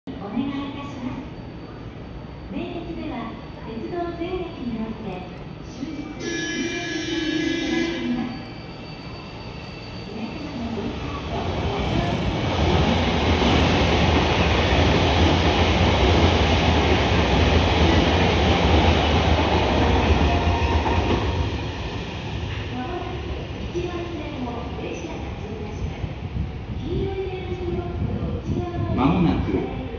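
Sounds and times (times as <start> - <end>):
brief pitched tone: 1.2 - 11.2
train wheels rumbling on rails: 1.8 - 29.9.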